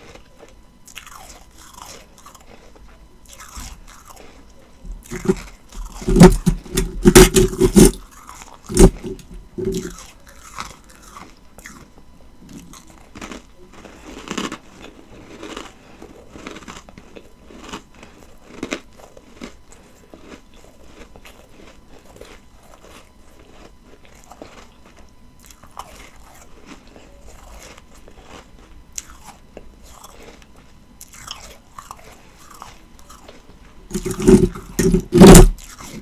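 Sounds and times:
ice being chewed: 0.0 - 36.0.

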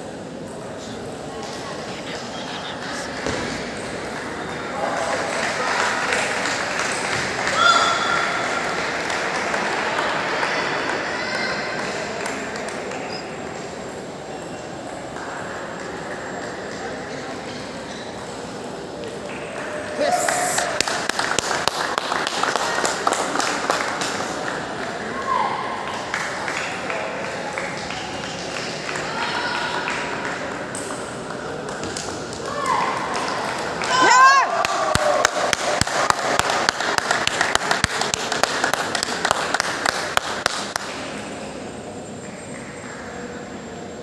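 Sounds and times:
loud shout: 7.4 - 8.4, 19.8 - 20.8, 29.0 - 30.0, 33.8 - 35.5.

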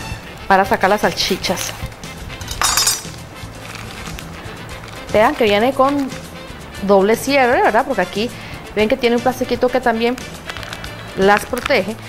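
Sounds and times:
plastic film crackling: 0.8 - 2.0, 3.0 - 6.2, 9.7 - 12.0
plastic package being cut open: 3.0 - 6.1, 10.1 - 11.9.

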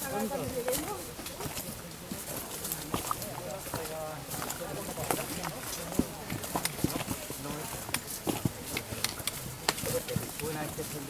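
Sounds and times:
footsteps on stony trail: 0.0 - 11.0
trekking poles knocking rocks: 5.0 - 11.0.

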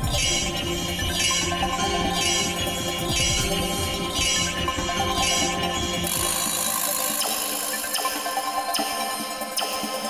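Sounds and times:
sharp ticks: 6.0 - 9.8.

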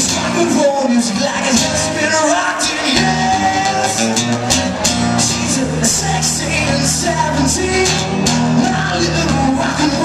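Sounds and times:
acoustic guitar strummed in chords: 0.0 - 10.0.

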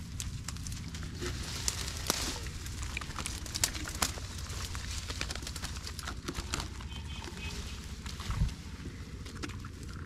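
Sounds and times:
tall grass rustling: 0.0 - 9.3
low steady rumble: 0.0 - 10.0.

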